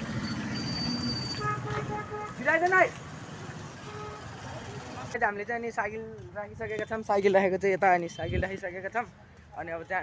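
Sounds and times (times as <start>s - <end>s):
hum of traffic: 0.0s - 10.0s.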